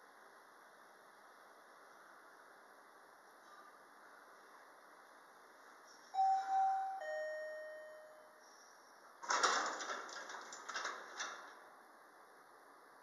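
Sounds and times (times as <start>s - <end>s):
two-tone elevator chime: 6.2s - 8.4s
elevator doors sliding open: 9.2s - 11.6s.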